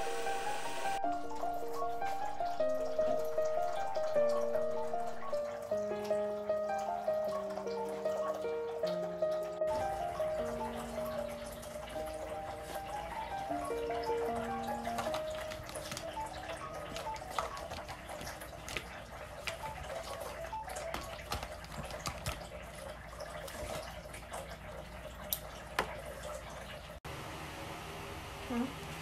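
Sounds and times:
melody notes: 0.0 - 17.4
water drips: 0.9 - 27.0.

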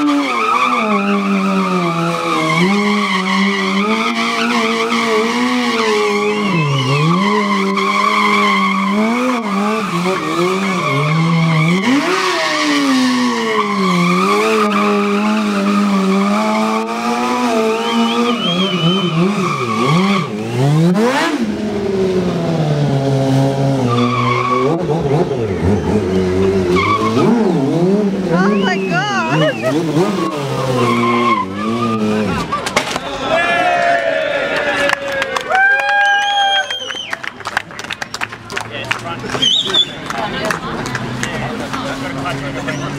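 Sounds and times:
motorcycle engine revving: 0.0 - 32.6
tyre squealing on asphalt: 0.0 - 34.5, 35.5 - 37.4, 38.9 - 42.9.

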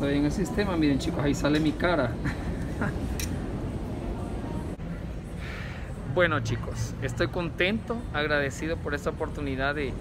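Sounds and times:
busy hall background noise: 0.0 - 10.0.

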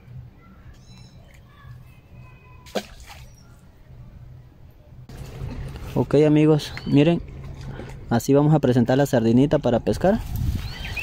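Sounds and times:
low steady hum: 0.0 - 10.6
small birds chirping: 0.4 - 3.7, 6.3 - 7.9, 10.4 - 11.0.

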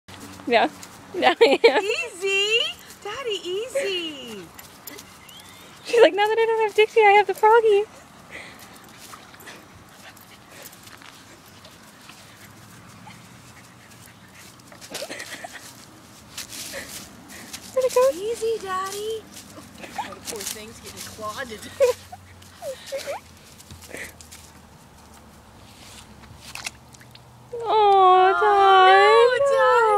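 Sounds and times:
faint rustling: 0.1 - 26.8
dog whimpering: 22.6 - 23.2.

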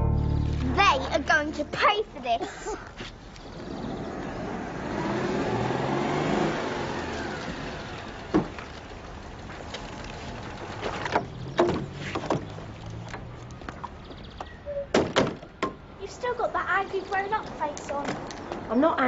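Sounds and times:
car driving past: 3.5 - 9.0.

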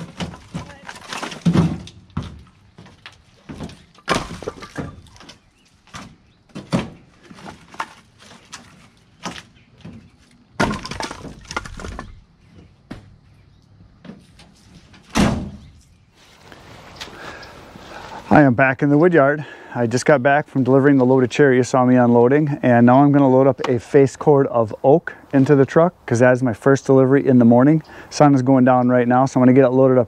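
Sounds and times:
logs clattering onto pile: 0.0 - 12.2.

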